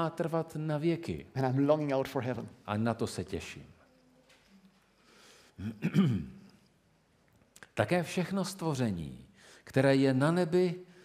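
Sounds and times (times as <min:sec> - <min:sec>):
man clearing his throat: 0:05.6 - 0:06.5.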